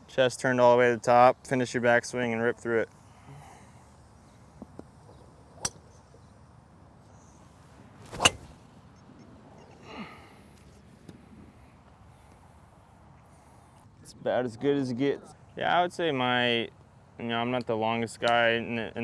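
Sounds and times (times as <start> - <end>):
golf driver striking ball: 8.1 - 8.5.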